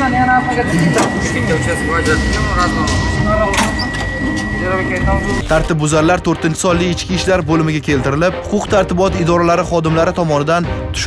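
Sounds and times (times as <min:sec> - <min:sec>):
street background noise: 0:00.0 - 0:05.6
high-pitched tone: 0:00.0 - 0:06.0
voices talking: 0:00.0 - 0:06.8.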